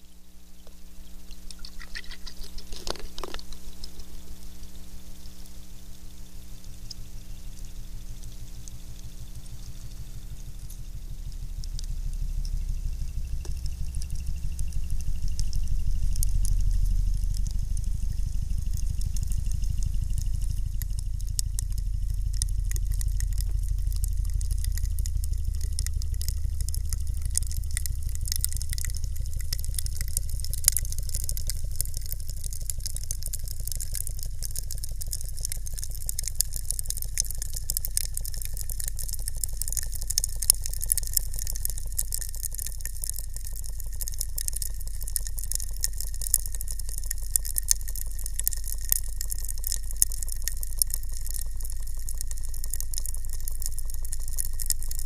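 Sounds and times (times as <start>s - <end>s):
pump pulsing: 0.0s - 55.0s
sharp ticks and pops: 0.0s - 55.0s
ice crackling: 1.3s - 4.2s.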